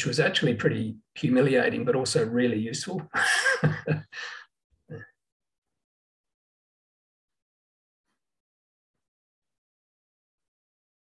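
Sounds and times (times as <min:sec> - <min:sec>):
man's short breathy laugh: 0:03.2 - 0:05.1.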